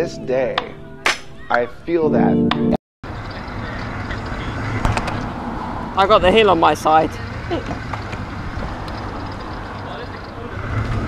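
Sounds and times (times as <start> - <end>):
powerchair wheels rumbling on tarmac: 3.1 - 11.0.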